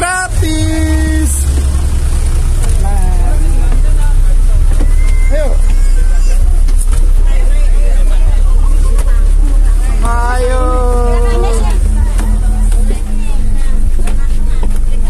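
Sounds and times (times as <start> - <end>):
bus engine idling: 0.0 - 15.0
scattered voices: 0.0 - 15.0.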